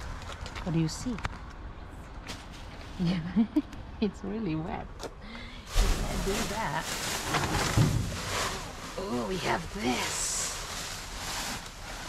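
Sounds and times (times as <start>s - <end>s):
plastic bags and bubble wrap rustling: 2.3s - 3.4s, 5.6s - 12.0s
dull thump: 7.3s - 8.6s.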